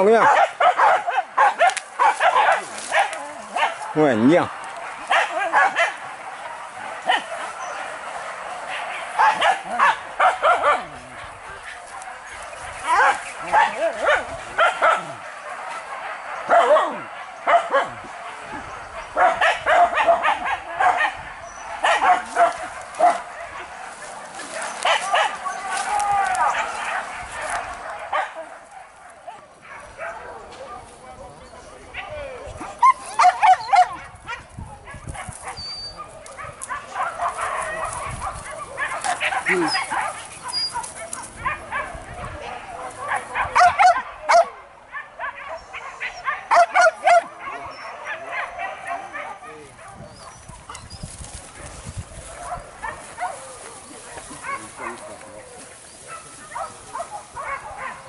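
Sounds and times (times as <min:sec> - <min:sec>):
dogs barking and yelping: 0:00.0 - 0:58.0.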